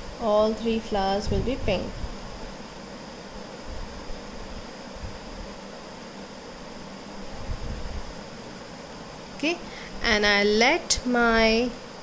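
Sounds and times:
faint high whine: 0:00.0 - 0:12.0
fan-like hiss: 0:00.0 - 0:12.0.

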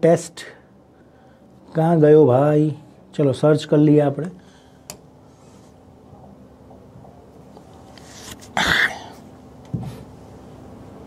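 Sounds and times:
man coughing: 0:08.6 - 0:09.2.

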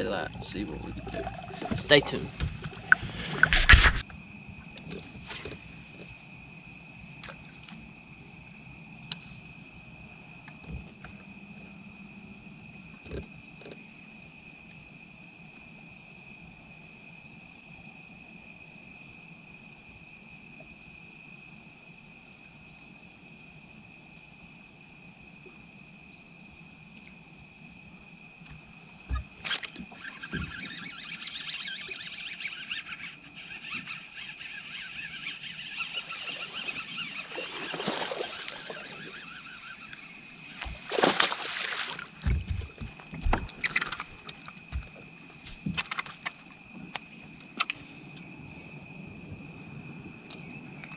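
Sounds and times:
insects and frogs trilling: 0:00.0 - 0:50.9
splashing and clatter: 0:37.2 - 0:39.2, 0:40.6 - 0:44.9.

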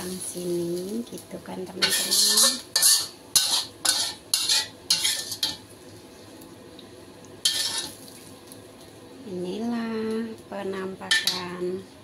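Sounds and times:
utensil scraping a pan: 0:01.8 - 0:05.6, 0:07.4 - 0:08.0.

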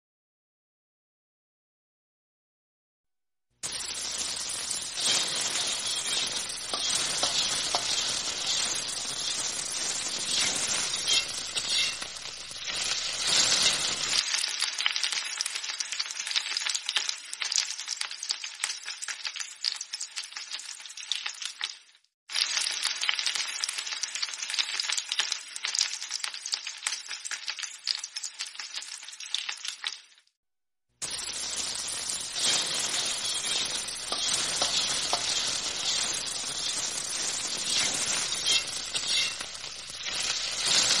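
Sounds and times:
vegetables sizzling in hot oil: 0:03.6 - 0:30.3, 0:31.0 - 0:41.0
metal spatula scraping pan: 0:03.7 - 0:14.2, 0:31.1 - 0:41.0.

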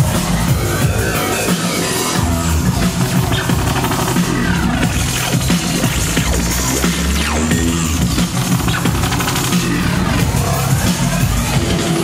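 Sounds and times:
deep bass line: 0:00.0 - 0:12.0
electronic dance music: 0:00.0 - 0:12.0.

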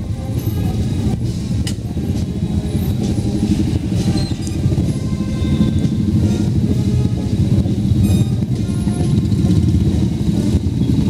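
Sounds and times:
motorcycle engines rumbling: 0:00.0 - 0:11.0.

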